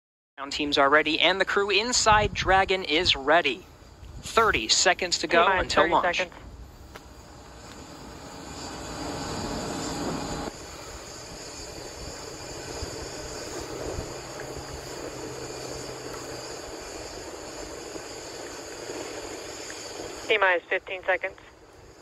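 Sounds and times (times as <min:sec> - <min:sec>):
steady rushing noise: 0:01.5 - 0:22.0.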